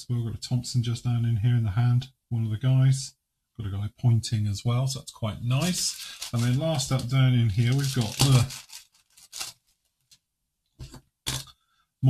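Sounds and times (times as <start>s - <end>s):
man making non-word sounds: 0.0s - 8.6s.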